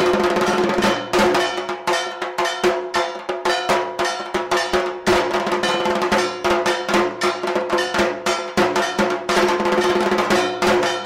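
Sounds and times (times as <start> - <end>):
drum strokes: 0.0 - 11.0
ringing struck metal bell: 0.1 - 11.0.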